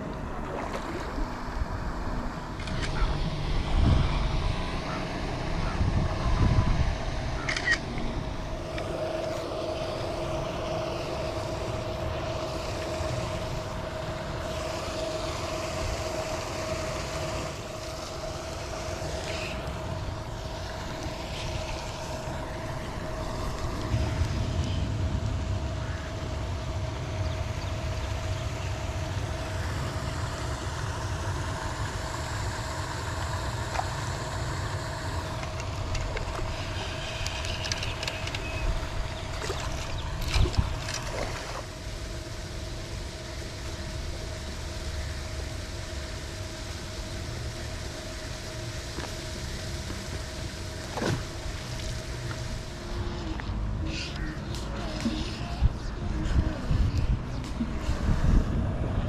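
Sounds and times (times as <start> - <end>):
churning water: 0.0 - 53.8
motor hum: 0.0 - 59.0.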